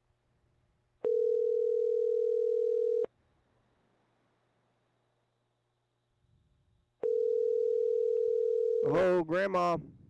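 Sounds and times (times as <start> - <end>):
telephone ringback tone: 1.0 - 3.1, 7.0 - 9.0.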